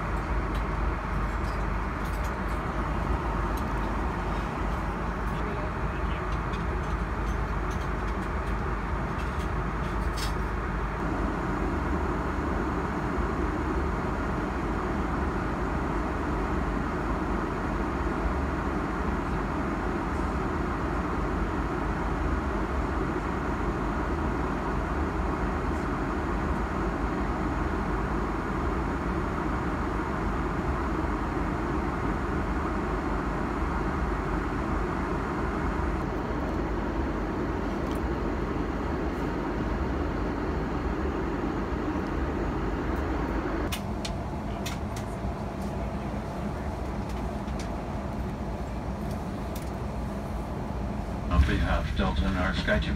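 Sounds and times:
airliner cabin noise: 0:00.0 - 0:52.9.

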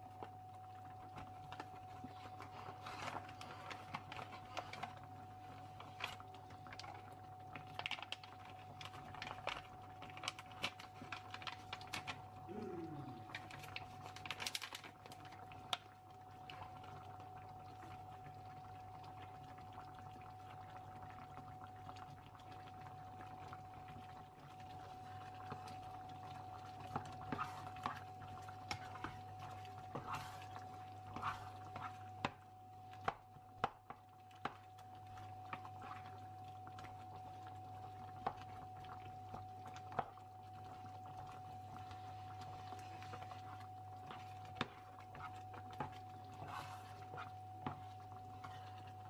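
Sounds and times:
sauce stirred in frying pan: 0:13.3 - 0:49.0.

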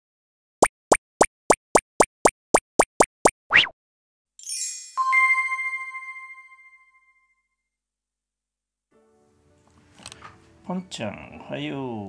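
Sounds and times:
cartoon plops: 0:00.6 - 0:03.8
rising cartoon swoop: 0:03.5 - 0:03.8.

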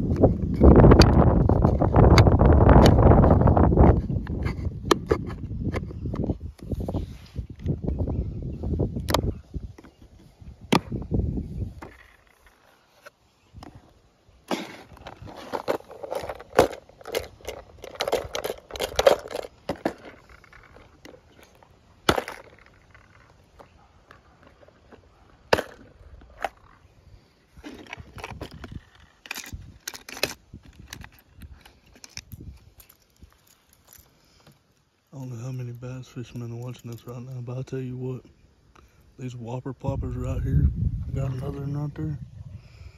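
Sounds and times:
plastic box drawers and lids clicking: 0:14.5 - 0:23.3
lures rattling inside box: 0:14.5 - 0:23.6.

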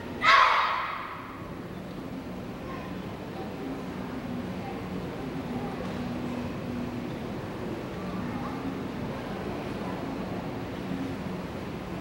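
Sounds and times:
children shouting in unison: 0:00.2 - 0:01.3.

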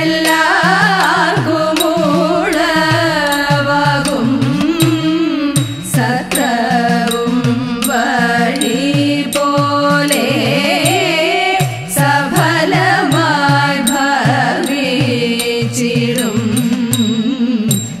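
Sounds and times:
hourglass drum strokes: 0:00.0 - 0:18.0
women singing: 0:00.0 - 0:18.0.

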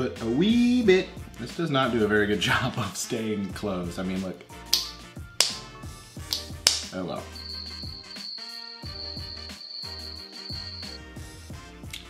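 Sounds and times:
background music: 0:00.0 - 0:12.0
plastic cap clicking open and shut: 0:04.8 - 0:05.6, 0:06.3 - 0:06.9.

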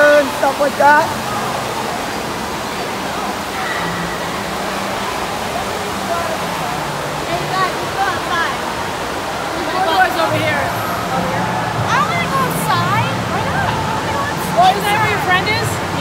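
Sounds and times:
faint voices: 0:00.0 - 0:16.0
running water rushing and splashing: 0:00.0 - 0:16.0.

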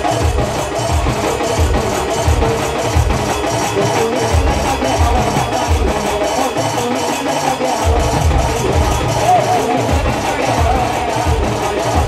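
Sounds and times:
barrel drums beating: 0:00.0 - 0:12.0
fast high percussion: 0:00.0 - 0:12.0.

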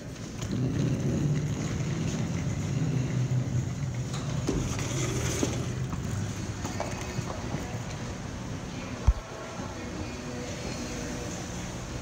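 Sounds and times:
suitcase wheels rumbling on floor: 0:00.0 - 0:08.1.

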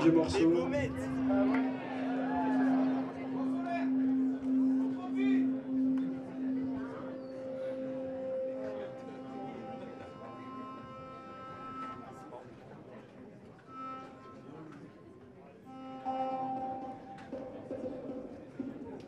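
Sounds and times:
droning synthesizer tones: 0:00.0 - 0:12.5.

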